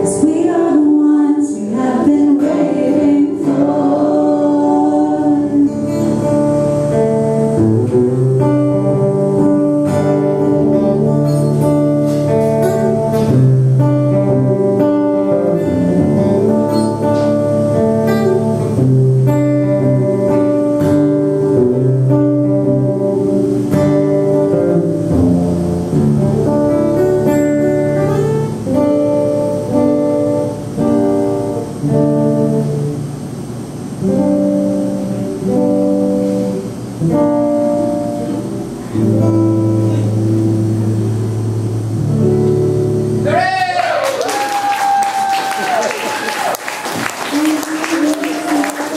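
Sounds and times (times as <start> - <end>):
acoustic guitar chords: 0.0 - 44.0.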